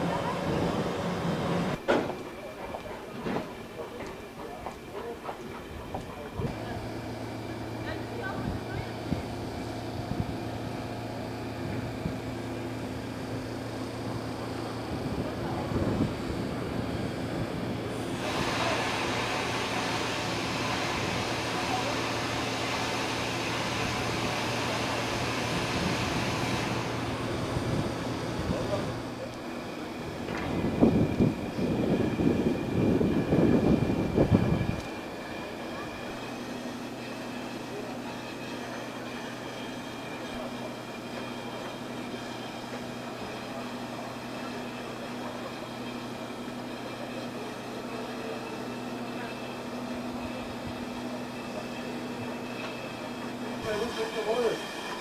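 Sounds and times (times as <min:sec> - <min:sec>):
locomotive low hum: 0:00.0 - 0:55.0
steam hissing: 0:17.2 - 0:55.0.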